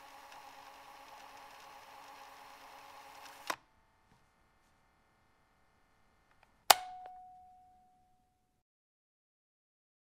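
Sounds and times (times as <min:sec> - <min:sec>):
sharp metallic clang: 0:06.7 - 0:08.3.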